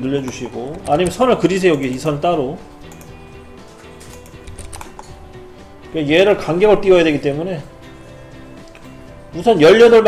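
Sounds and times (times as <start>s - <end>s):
quiet background music: 0.0s - 10.0s
computer mouse clicks: 2.8s - 3.2s, 4.0s - 5.1s.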